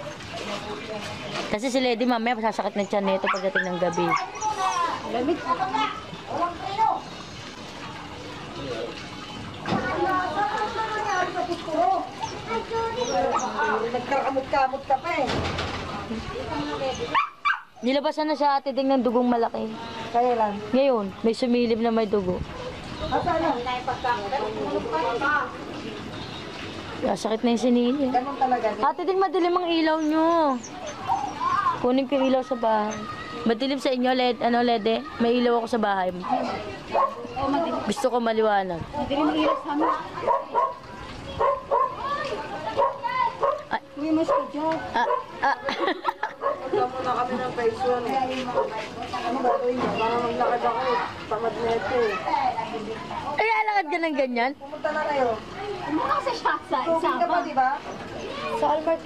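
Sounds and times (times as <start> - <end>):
voices talking: 0.0 - 59.0.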